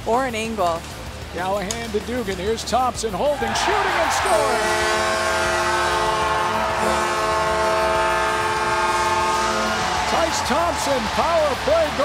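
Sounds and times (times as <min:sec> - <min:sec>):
arena goal horn: 0:03.7 - 0:12.0.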